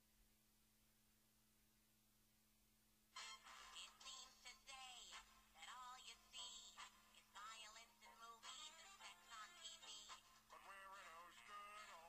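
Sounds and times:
faint singing with cartoon music: 0:03.2 - 0:12.0.

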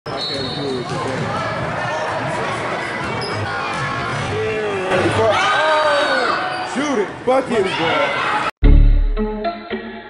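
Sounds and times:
voices of players and onlookers: 0:00.1 - 0:08.5.

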